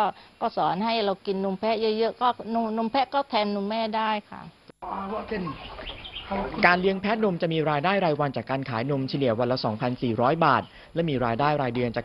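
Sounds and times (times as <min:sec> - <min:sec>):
woman speaking: 0:00.0 - 0:04.6
quiet outdoor ambience: 0:00.0 - 0:12.0
farm animal calling: 0:04.8 - 0:08.2.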